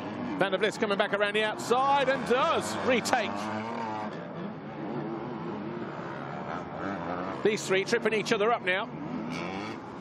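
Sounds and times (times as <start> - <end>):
motocross bike engines racing: 0.0 - 10.0.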